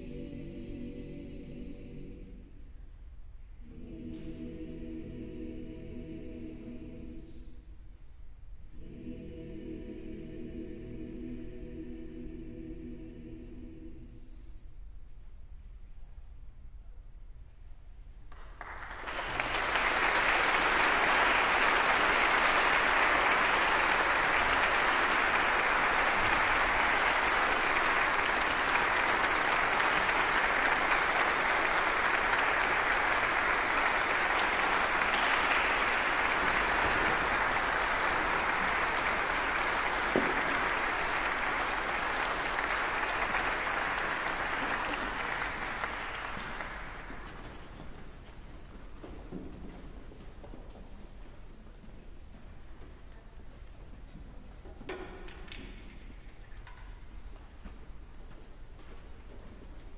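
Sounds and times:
audience applause: 18.3 - 47.7.

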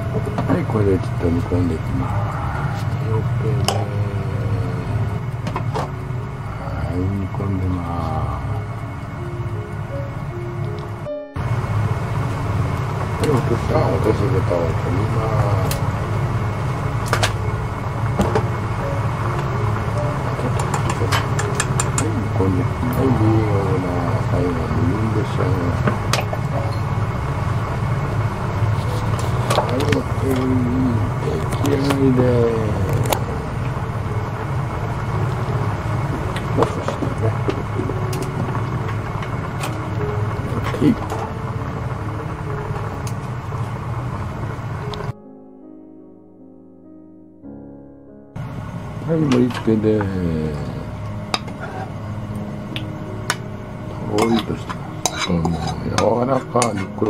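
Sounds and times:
broth at a rolling boil: 0.0 - 45.1, 48.4 - 57.0
quiet piano music: 0.0 - 57.0
steady low hum: 0.0 - 57.0.

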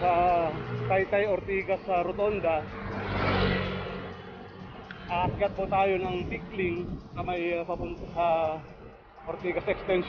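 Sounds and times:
motorcycle passing by: 0.0 - 6.5.

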